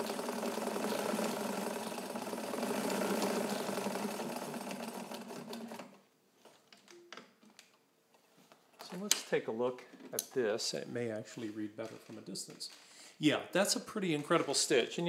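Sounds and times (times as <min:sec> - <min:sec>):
sewing machine stitching: 0:00.0 - 0:06.0.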